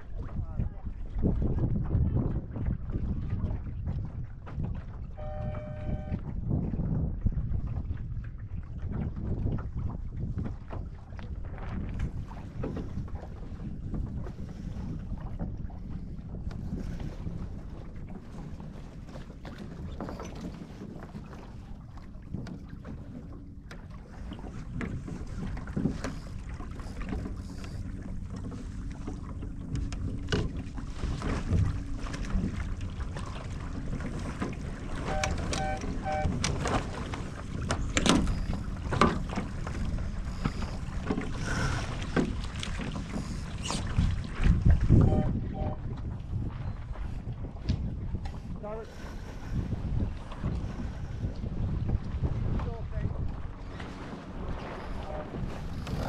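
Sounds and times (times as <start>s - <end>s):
knocks and splashes: 0.0s - 48.5s
water slapping boat hull: 0.0s - 56.0s
wind buffeting microphone: 0.0s - 56.0s
brief tone: 5.1s - 6.3s, 35.0s - 36.4s, 37.8s - 38.7s, 45.0s - 45.8s, 46.6s - 46.9s, 55.0s - 55.3s.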